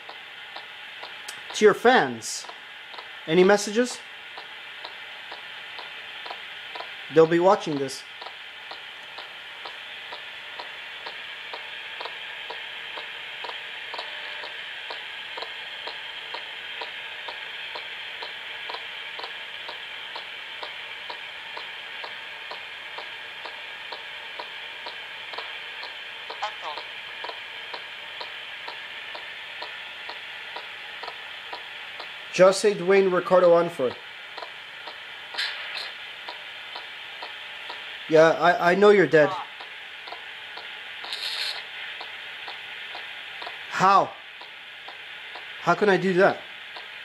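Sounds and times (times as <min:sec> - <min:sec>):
regular ticking: 0:00.0 - 0:03.1, 0:04.3 - 0:07.0, 0:07.7 - 0:32.2, 0:33.9 - 0:35.0, 0:36.2 - 0:37.9, 0:39.6 - 0:43.7, 0:44.3 - 0:45.6, 0:46.7 - 0:47.0
radio static: 0:26.3 - 0:27.0, 0:35.4 - 0:36.0, 0:41.0 - 0:41.8.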